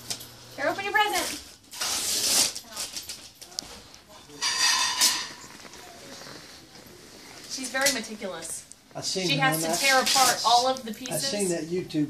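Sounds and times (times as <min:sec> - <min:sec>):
wrapping paper ripping: 0:01.2 - 0:03.4.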